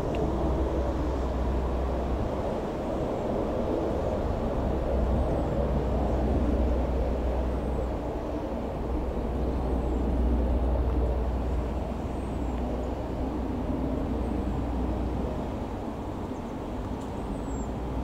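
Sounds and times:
helicopter flying past: 0.0s - 16.8s.

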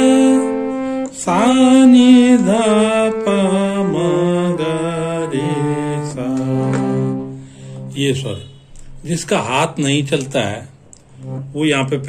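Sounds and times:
man singing note names: 0.0s - 7.1s
harmonium notes stepping down: 0.0s - 12.0s.

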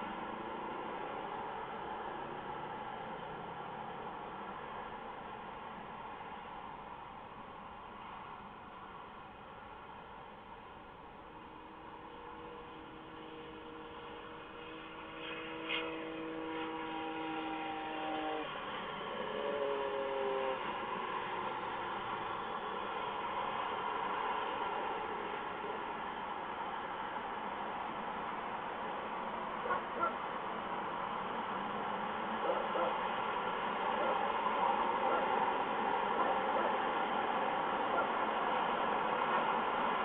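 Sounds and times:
distant horn chord: 11.2s - 21.7s.

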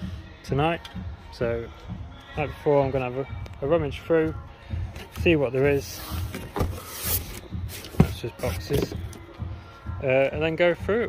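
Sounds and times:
cardboard boxes rustling and scraping: 5.0s - 9.2s.

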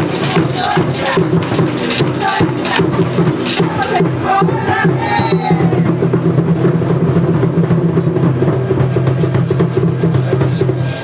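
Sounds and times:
fast drumming: 0.0s - 11.0s.

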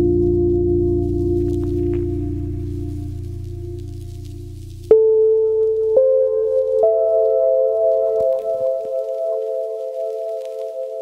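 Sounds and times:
sustained tones stacking into chord: 0.0s - 10.9s
ambient music drone: 0.0s - 11.0s.

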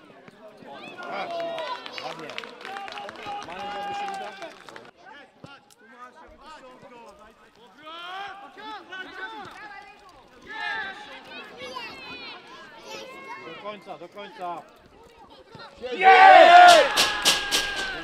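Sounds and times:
men shouting and calling out: 15.8s - 18.0s.

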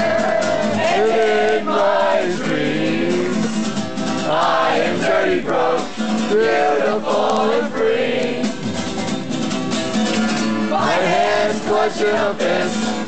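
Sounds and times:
strummed guitar: 0.0s - 13.0s.

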